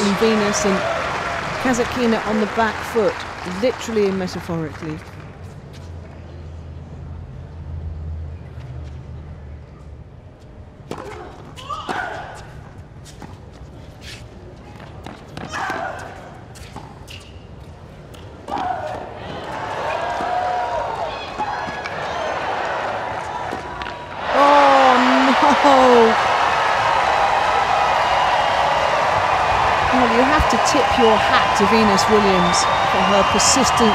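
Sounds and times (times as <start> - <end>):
crowd cheering and shouting: 0.0 - 2.4, 18.8 - 33.9
applause: 0.0 - 5.4, 24.3 - 33.9.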